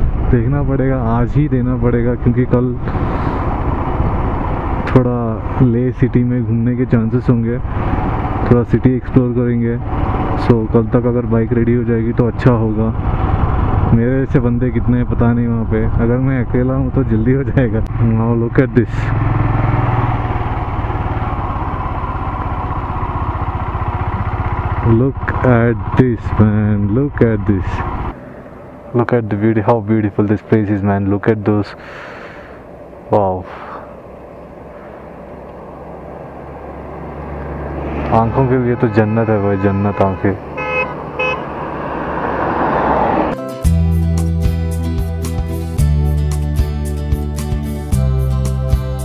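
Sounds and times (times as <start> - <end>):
motorcycle road and wind noise: 0.0 - 43.6
motorcycle engine running: 17.9 - 28.9, 33.9 - 42.3
vehicle passing: 19.0 - 30.5, 31.7 - 43.4
vehicle horn toot: 38.1 - 41.5.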